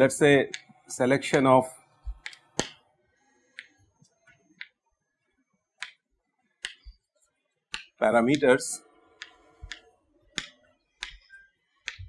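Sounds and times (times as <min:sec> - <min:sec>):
chalk clicking on blackboard: 0:02.1 - 0:02.8, 0:05.8 - 0:06.0, 0:06.6 - 0:07.0, 0:07.7 - 0:08.0, 0:09.2 - 0:12.0.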